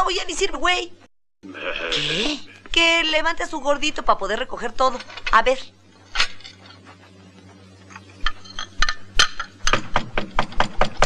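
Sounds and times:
china cups and dishes clinking: 8.2 - 9.6.

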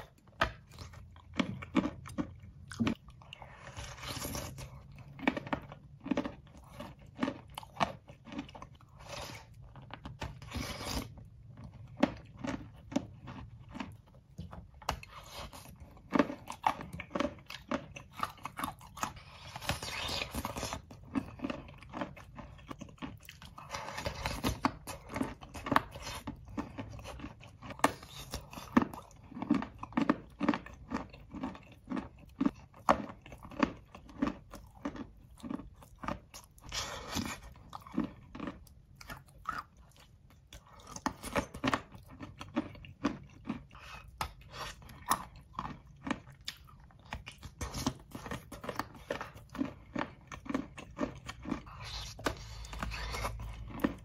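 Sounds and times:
close chewing and crunching: 0.0 - 54.0.

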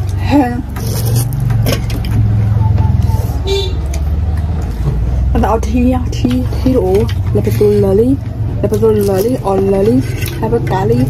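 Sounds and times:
low motor vehicle rumble: 0.0 - 11.0.

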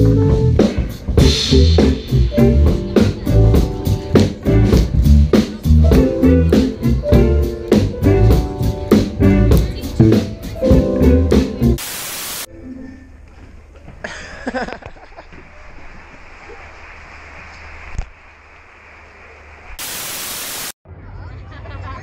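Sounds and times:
live band with guitar and drums: 0.0 - 11.8
static-like hiss: 11.8 - 12.5, 15.4 - 20.8.

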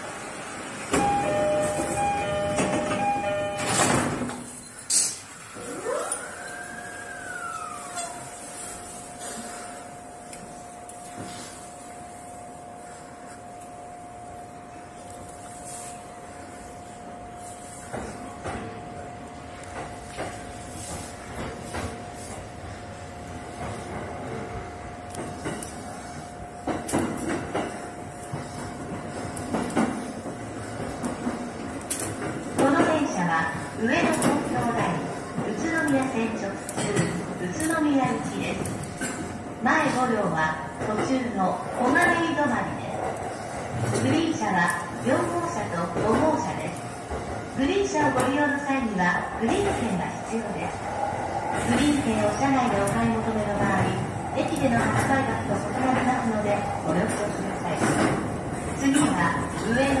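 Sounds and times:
electric train rolling hum: 0.0 - 60.0
two-note door chime: 1.0 - 4.0.

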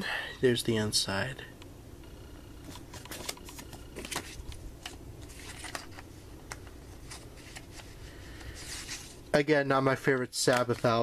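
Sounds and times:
paper pages rustling: 2.7 - 9.2, 10.0 - 11.0.

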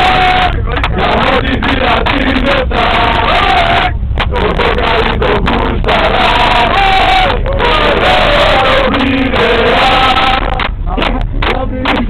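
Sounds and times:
football fans chanting: 0.0 - 12.0.

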